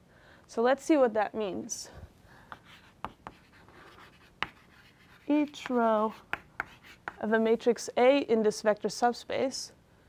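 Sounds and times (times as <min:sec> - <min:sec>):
chalk scratching strokes: 0:02.5 - 0:07.2
chalk tapping on blackboard: 0:02.5 - 0:07.2.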